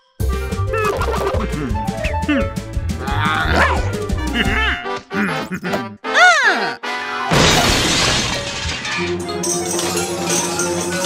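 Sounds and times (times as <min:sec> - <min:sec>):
cartoon music with bass line: 0:00.2 - 0:07.3
cartoon character grumbling: 0:00.7 - 0:06.9.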